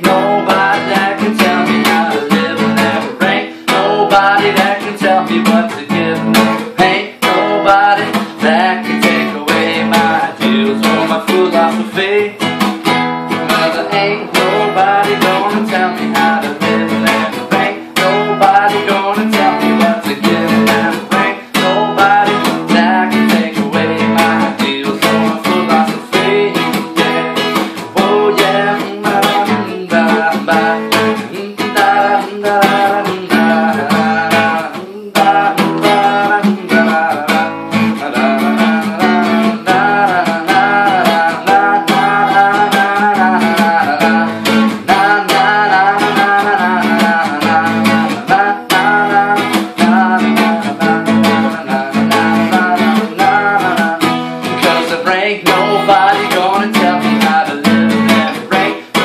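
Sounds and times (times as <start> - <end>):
acoustic guitar strumming: 0.0 - 59.0
man singing: 0.0 - 59.0.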